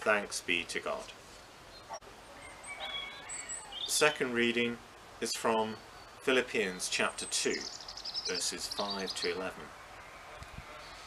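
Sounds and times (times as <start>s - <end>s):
faint outdoor hiss: 0.0s - 11.0s
small birds chirping: 1.0s - 11.0s.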